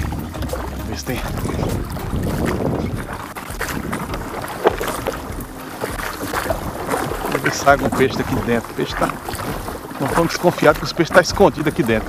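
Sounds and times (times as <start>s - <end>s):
sharp knock on canoe: 0.0s - 11.6s
grass scraping along canoe hull: 0.0s - 12.0s
water swishing: 0.0s - 12.0s.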